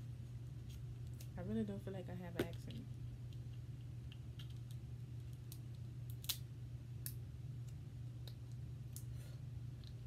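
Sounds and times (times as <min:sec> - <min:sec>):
crab shell cracking: 0:03.3 - 0:09.1.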